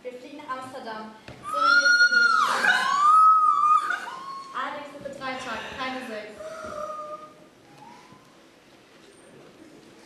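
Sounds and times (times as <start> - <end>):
girl squealing with delight: 1.4 - 4.8, 6.4 - 8.3.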